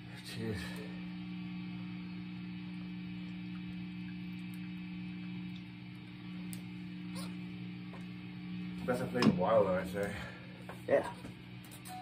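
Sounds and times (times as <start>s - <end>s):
guitar amplifier hum: 0.0s - 12.0s.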